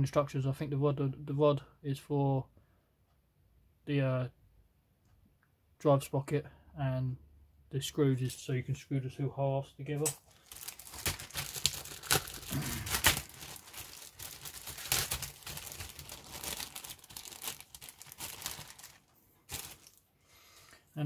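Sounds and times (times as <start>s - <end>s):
plastic bag crinkling: 10.2s - 20.1s.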